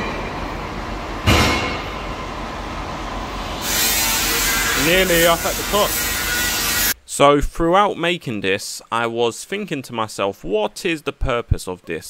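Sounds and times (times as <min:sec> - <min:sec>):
workshop rumble with low hum: 0:00.0 - 0:07.0
sharp knock: 0:01.2 - 0:02.0
hiss: 0:03.6 - 0:06.9.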